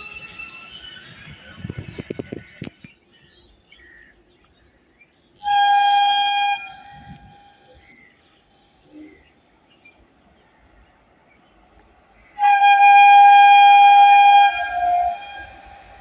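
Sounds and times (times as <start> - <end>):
locomotive horn blast: 5.4 - 7.7, 12.4 - 16.0.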